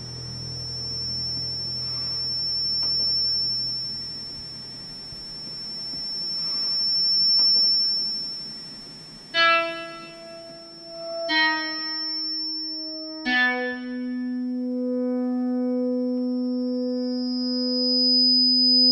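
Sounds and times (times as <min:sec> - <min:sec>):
low drone: 0:00.0 - 0:07.0
high-pitched whine: 0:00.0 - 0:18.9.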